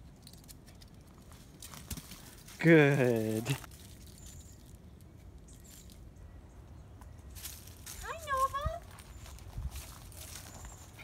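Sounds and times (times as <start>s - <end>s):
paws on dry leaves: 7.4s - 11.0s.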